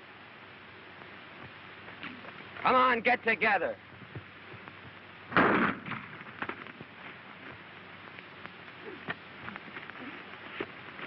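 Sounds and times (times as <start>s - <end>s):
film soundtrack hiss: 0.0s - 11.0s
loud bang: 5.3s - 6.3s.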